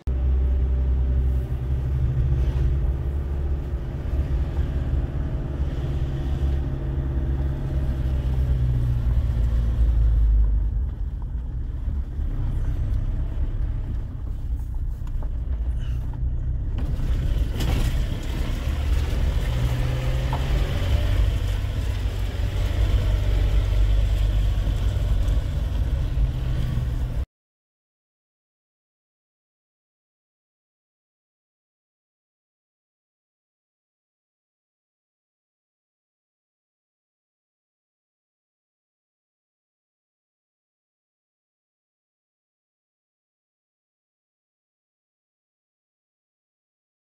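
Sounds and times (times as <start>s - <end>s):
car engine and road rumble: 0.1s - 27.3s.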